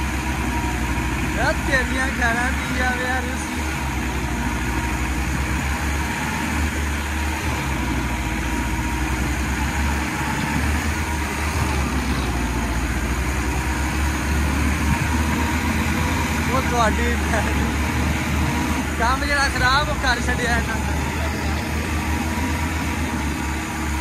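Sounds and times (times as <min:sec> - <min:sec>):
tractor engines droning under load: 0:00.0 - 0:24.0.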